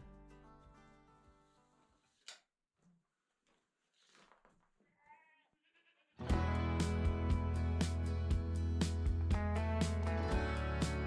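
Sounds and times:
goat bleating: 4.8s - 6.3s.

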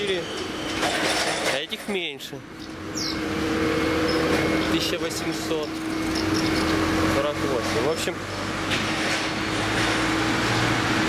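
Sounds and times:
machinery running hum and hiss: 0.0s - 11.0s.

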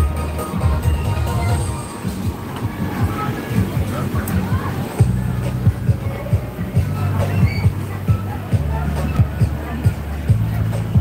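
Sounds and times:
bass-heavy music from loudspeakers: 0.0s - 11.0s
crowd rumble: 0.0s - 11.0s.

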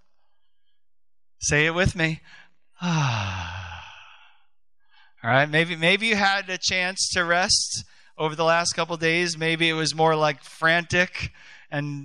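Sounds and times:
man sighing: 2.3s - 4.4s.

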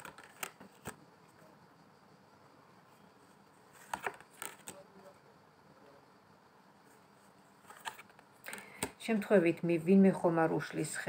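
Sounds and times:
cards shuffled by hand: 0.0s - 1.0s, 3.7s - 4.8s, 7.6s - 8.9s.

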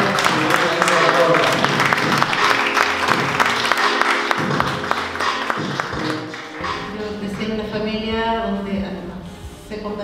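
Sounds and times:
audience clapping: 0.0s - 7.4s
music playing: 0.0s - 10.0s.

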